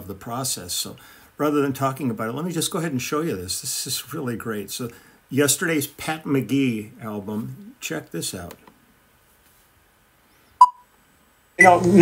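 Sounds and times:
short electronic beep: 10.6 - 10.8.

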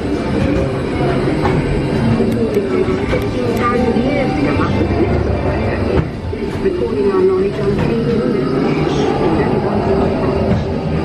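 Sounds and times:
ride vehicles rumbling on track: 0.0 - 11.0
voices with sliding pitch: 0.6 - 11.0.

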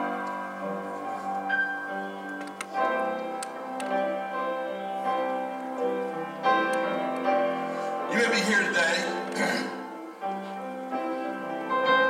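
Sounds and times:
soft piano music: 0.0 - 12.0.

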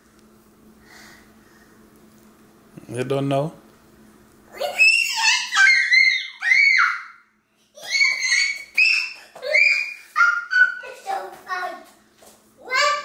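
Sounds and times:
toddler squealing: 4.6 - 7.2, 7.8 - 10.8.

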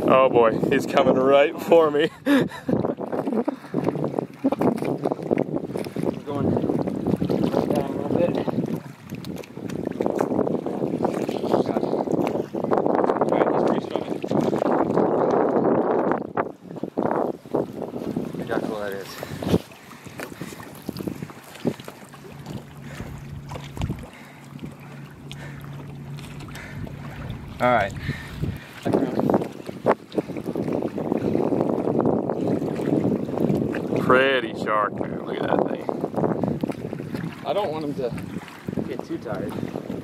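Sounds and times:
gusty wind on microphone: 0.0 - 40.0
low steady hum: 22.2 - 28.8.

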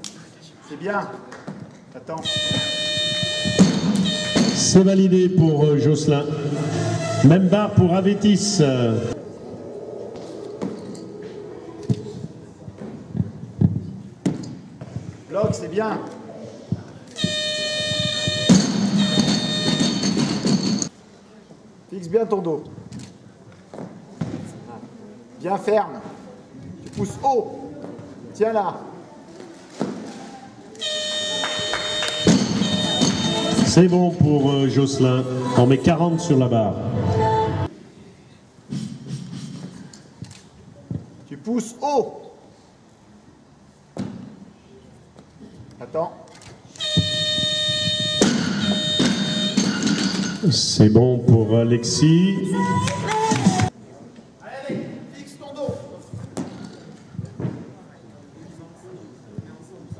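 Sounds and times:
low murmur of voices: 9.1 - 19.6, 20.9 - 35.7, 52.6 - 59.9
faint indistinct voices: 9.2 - 14.2, 22.7 - 33.8.

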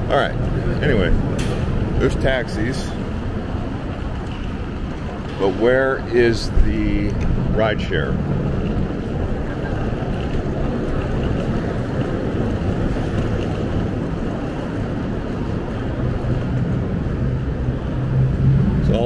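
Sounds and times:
low hum: 0.0 - 19.0
traffic and idling engines: 0.0 - 19.0.

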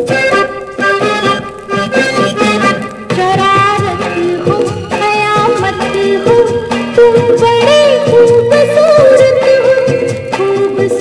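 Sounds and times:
film song from vinyl record: 0.0 - 11.0.

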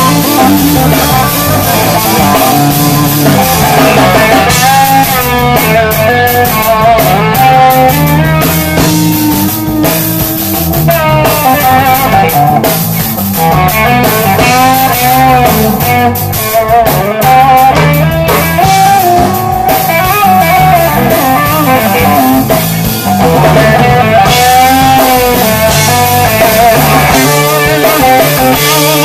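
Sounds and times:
drum kit: 0.0 - 29.0
electric guitar lead: 0.0 - 29.0
low steady bass notes: 0.0 - 29.0.

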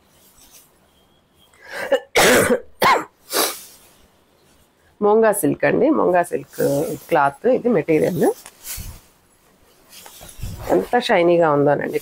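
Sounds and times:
woman coughing: 1.7 - 3.2.

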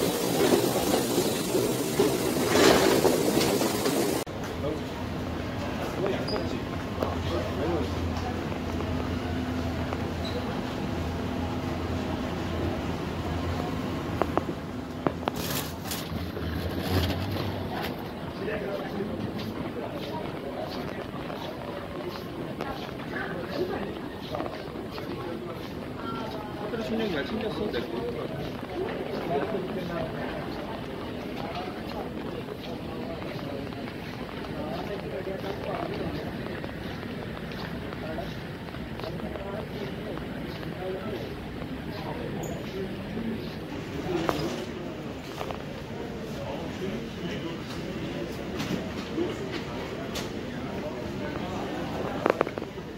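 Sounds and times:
luggage trolley rolling on tiles: 0.0 - 4.3, 14.1 - 52.9
walkway rattling clatter: 0.0 - 4.6, 14.2 - 52.9
moving walkway and ventilation hum: 0.0 - 52.9
murmur of voices: 0.0 - 52.9
footsteps clicking: 14.2 - 44.4.

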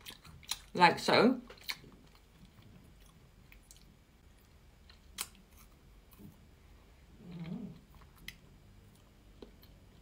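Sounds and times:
faint chewing: 0.0 - 0.7, 1.4 - 10.0.

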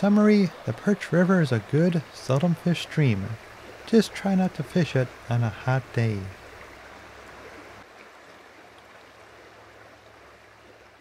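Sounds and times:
river water rushing: 0.0 - 11.0.

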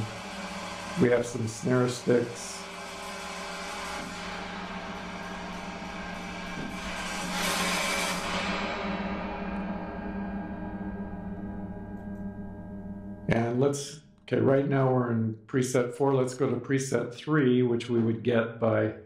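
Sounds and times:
ringing orchestral percussion texture: 0.0 - 11.9.

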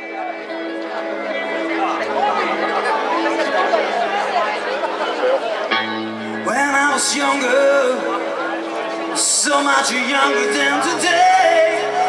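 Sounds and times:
audience chatting: 0.0 - 12.0
electric guitar: 0.0 - 12.0
rock band playing: 0.0 - 12.0.

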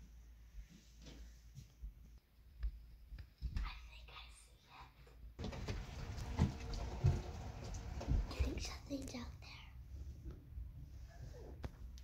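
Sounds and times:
whispered speech: 3.6 - 5.0.

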